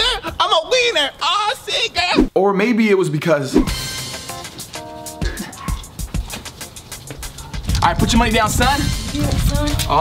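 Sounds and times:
background music with quick beat: 0:03.6 - 0:10.0.

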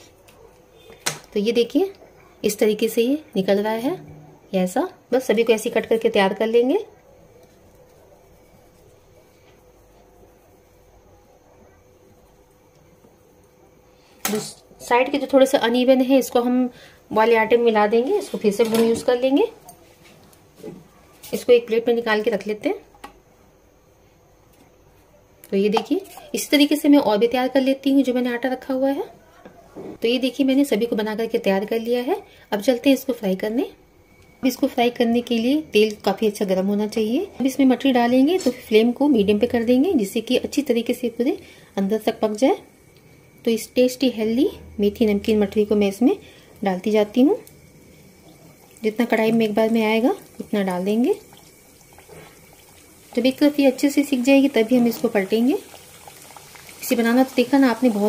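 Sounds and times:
dough sizzling in hot oil: 0:34.0 - 0:58.0.

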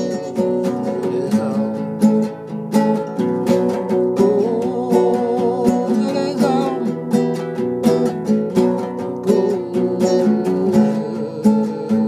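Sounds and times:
acoustic guitar strumming: 0:00.0 - 0:12.0.

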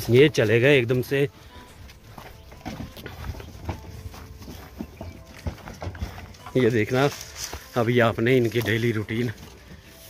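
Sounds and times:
sheep hooves on wooden planks: 0:00.0 - 0:10.0.

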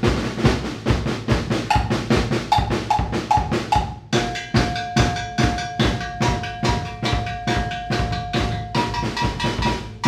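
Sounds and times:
drum kit steady beat: 0:00.0 - 0:10.0.

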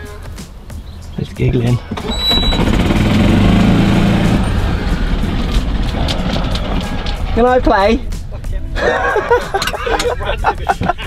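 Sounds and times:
golf cart motor rumbling: 0:01.8 - 0:07.5, 0:09.5 - 0:10.1.

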